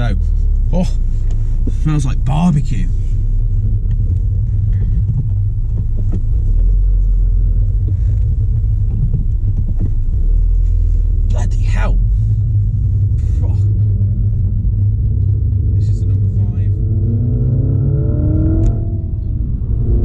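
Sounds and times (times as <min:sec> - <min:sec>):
car engine running: 0:00.0 - 0:20.0
drivetrain and road noise: 0:00.0 - 0:20.0.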